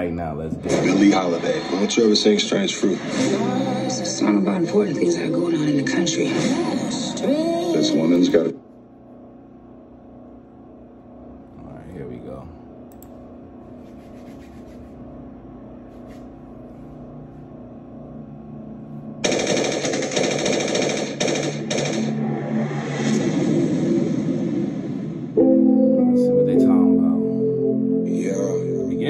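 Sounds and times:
rapid automatic gunfire: 19.2s - 22.2s.

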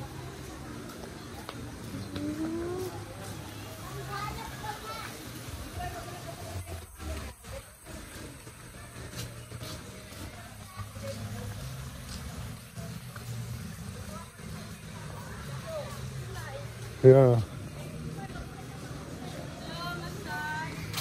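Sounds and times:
faint indistinct voices: 0.0s - 21.0s.

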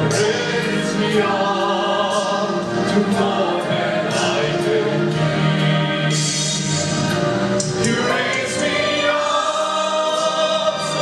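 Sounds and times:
women's choir singing: 0.0s - 6.8s, 7.8s - 11.0s.

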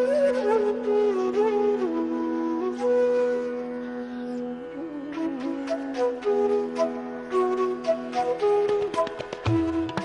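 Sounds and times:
bamboo flute melody: 0.0s - 10.0s.

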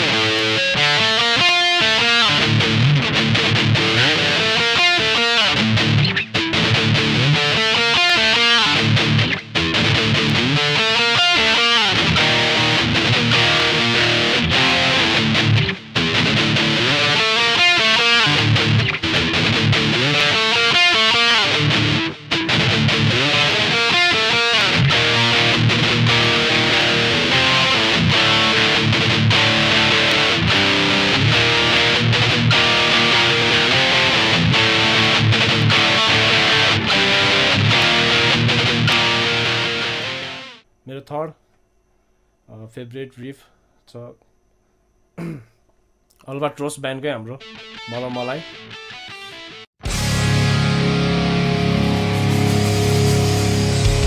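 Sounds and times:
electric guitar riff: 0.0s - 40.6s, 47.4s - 54.0s.

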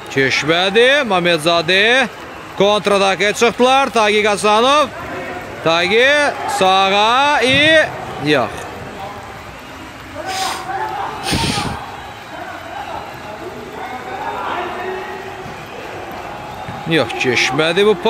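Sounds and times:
players shouting: 0.0s - 18.0s.

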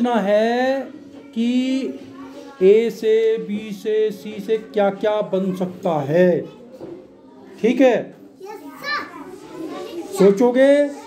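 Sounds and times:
children chattering and calling out: 0.0s - 11.0s
child's voice: 8.4s - 11.0s.

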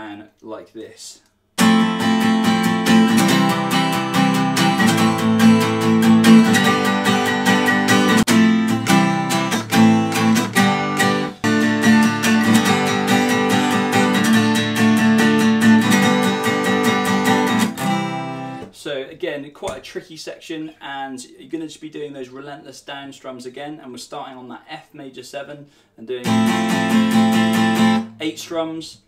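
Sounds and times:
acoustic guitar strumming: 1.6s - 18.7s, 26.2s - 28.3s.

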